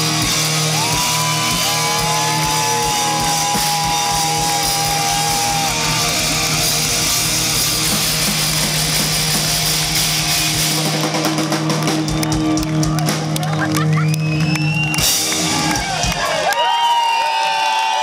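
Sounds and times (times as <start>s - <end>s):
drum and cymbal hits: 0.0s - 13.7s, 14.9s - 16.5s
live rock band playing: 0.0s - 16.5s.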